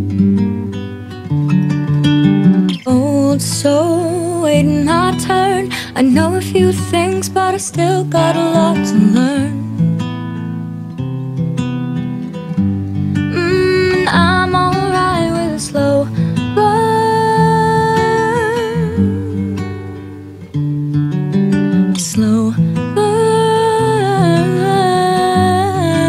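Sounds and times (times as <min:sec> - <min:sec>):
strummed acoustic guitar: 0:00.0 - 0:26.0
woman singing: 0:02.8 - 0:09.8, 0:13.3 - 0:20.2, 0:21.9 - 0:26.0.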